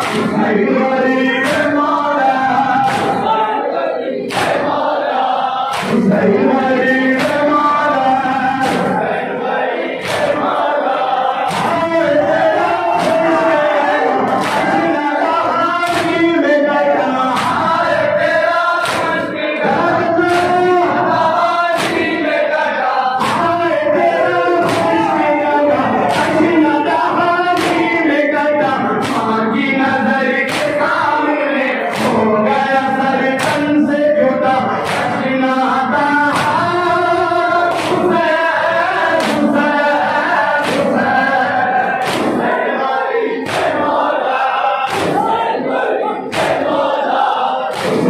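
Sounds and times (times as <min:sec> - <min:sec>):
hands slapping on chests: 0:00.0 - 0:00.4, 0:01.4 - 0:01.8, 0:02.8 - 0:03.4, 0:04.3 - 0:04.9, 0:05.7 - 0:06.1, 0:07.2 - 0:07.6, 0:08.6 - 0:09.1, 0:10.0 - 0:13.4, 0:14.1 - 0:14.8, 0:15.8 - 0:16.2, 0:17.3 - 0:18.0, 0:18.8 - 0:22.2, 0:23.2 - 0:23.6, 0:24.6 - 0:25.0, 0:26.0 - 0:26.5, 0:27.6 - 0:27.9, 0:29.0 - 0:31.0, 0:31.9 - 0:32.8, 0:33.4 - 0:33.7, 0:34.7 - 0:35.3, 0:37.7 - 0:42.5, 0:43.4 - 0:44.0, 0:44.8 - 0:45.4, 0:46.3 - 0:46.9, 0:47.7 - 0:48.0
crowd of men chanting refrain: 0:00.0 - 0:48.0
men chanting a lament: 0:00.0 - 0:48.0.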